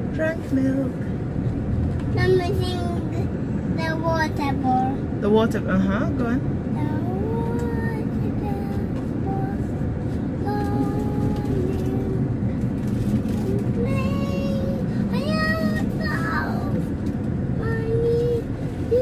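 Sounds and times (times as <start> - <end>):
car cabin rumble: 0.0 - 19.0
child singing: 6.8 - 9.7, 10.4 - 12.4, 13.4 - 16.7, 17.6 - 19.0.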